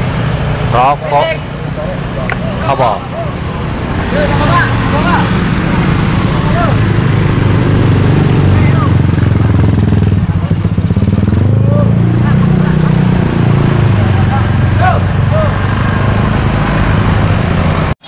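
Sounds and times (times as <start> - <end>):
motorcycle engines passing: 0.0 - 18.0
voices in background: 0.7 - 7.0.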